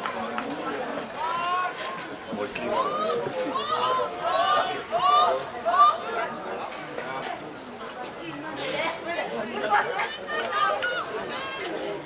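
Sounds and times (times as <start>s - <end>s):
young voices shouting: 9.8s - 11.7s.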